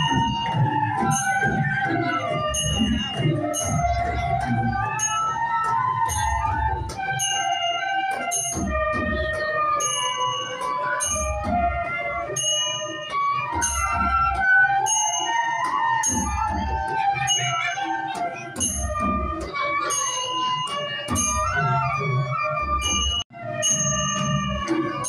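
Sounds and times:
bamboo flutes playing melody: 0.0s - 25.0s
metallic cymbal strikes: 12.2s - 14.0s.

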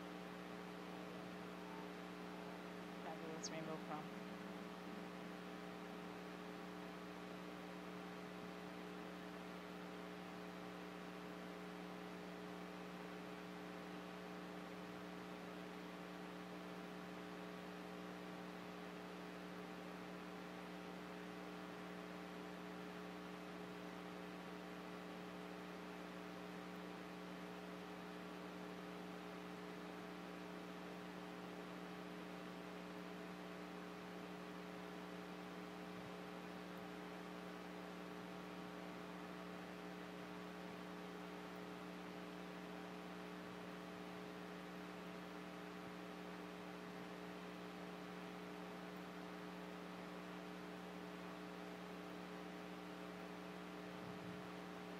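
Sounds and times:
electrical mains hum: 0.0s - 54.9s.

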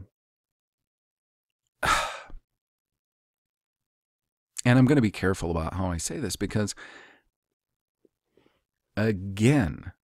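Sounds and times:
man sighing: 1.8s - 2.4s.

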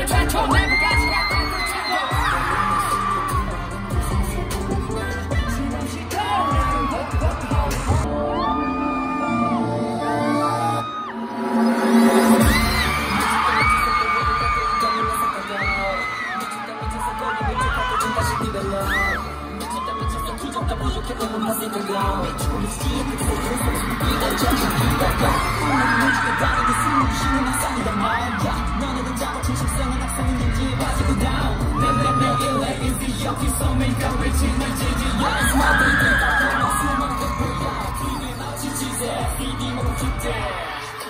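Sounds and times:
kick drum beat: 0.0s - 2.7s, 3.3s - 8.1s, 12.4s - 15.8s, 16.8s - 19.2s, 20.0s - 21.2s, 26.4s - 32.2s
fans screaming: 0.0s - 41.0s
live pop concert music: 0.0s - 41.0s
singer on stage: 0.0s - 41.0s.

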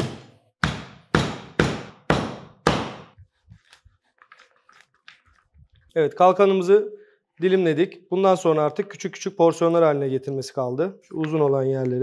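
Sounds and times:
cleaver chopping fish on board: 0.0s - 3.2s
faint handling sounds: 3.2s - 6.0s.

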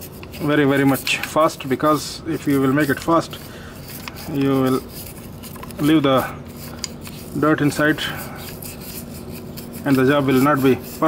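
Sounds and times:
cotton swab scratching metal: 0.0s - 11.0s
person speaking: 0.3s - 11.0s.

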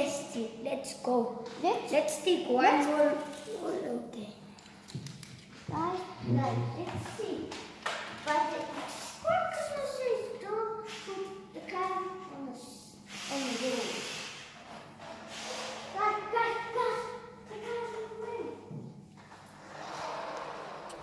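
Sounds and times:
children talking and calling out: 8.3s - 14.0s
burst of hissing noise: 13.1s - 14.5s, 15.3s - 16.0s.

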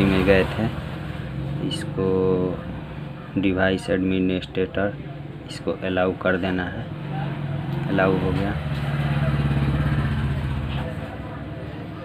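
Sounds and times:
engine droning: 0.0s - 12.0s.

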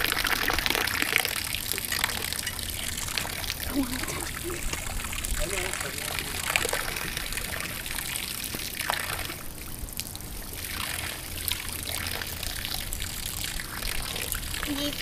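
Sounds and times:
water from hose splashing: 0.0s - 15.0s.

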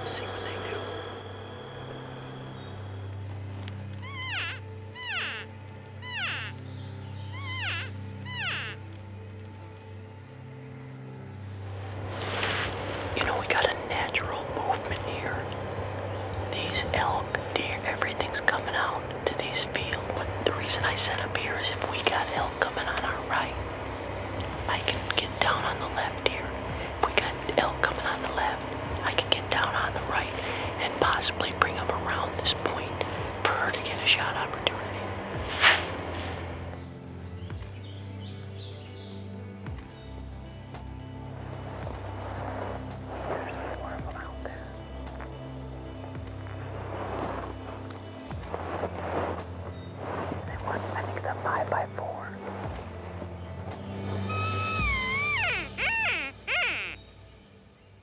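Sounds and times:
people whispering: 0.0s - 1.4s, 12.2s - 23.7s, 24.4s - 35.8s, 43.1s - 45.3s, 50.5s - 52.6s
low steady music: 0.0s - 58.0s.

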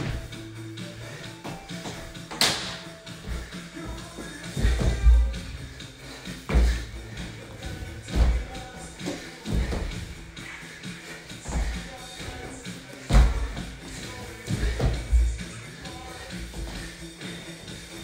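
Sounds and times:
music playing: 0.0s - 18.0s
heavy thuds on laminate floor: 6.5s - 6.9s, 7.6s - 10.2s, 13.0s - 13.8s, 14.4s - 15.5s.

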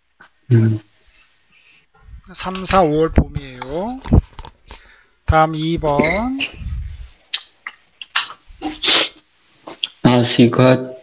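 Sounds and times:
person sneezing: 8.1s - 9.2s.

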